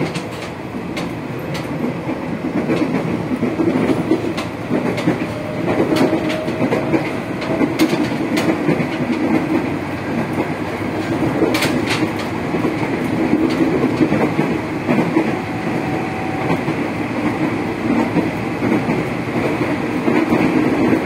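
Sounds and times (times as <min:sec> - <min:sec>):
train wheels rumbling on track: 0:00.0 - 0:21.0
wheels clicking over rail joints: 0:00.0 - 0:21.0.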